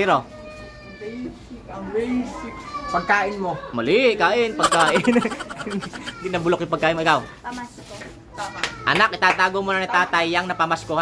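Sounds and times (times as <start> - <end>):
children talking softly: 4.6 - 6.6.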